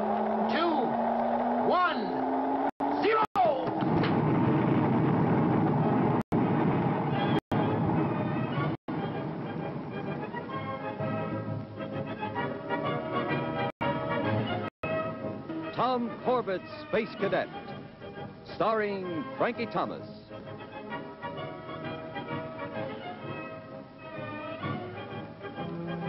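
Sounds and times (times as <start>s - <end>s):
rising hum: 0.0s - 3.0s, 3.7s - 8.7s, 25.5s - 26.0s
rocket launch roar: 3.4s - 8.1s
music: 7.0s - 26.0s.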